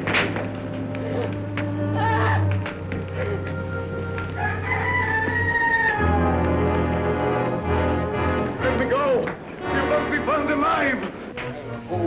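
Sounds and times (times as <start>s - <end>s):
low orchestral music: 0.0s - 12.0s
rooster crowing: 3.8s - 6.8s.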